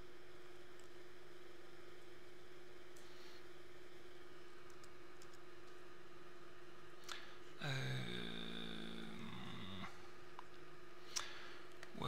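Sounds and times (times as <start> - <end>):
man saying uhhh: 7.6 - 10.0.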